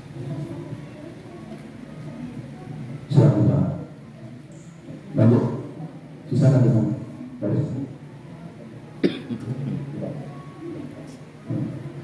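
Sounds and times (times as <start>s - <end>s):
faint low voices: 0.0s - 12.0s
person coughing: 9.0s - 9.6s.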